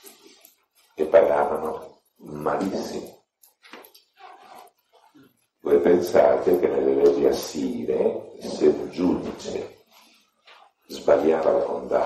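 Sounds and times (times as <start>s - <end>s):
man speaking: 0.9s - 3.3s, 5.6s - 10.1s, 10.8s - 12.0s.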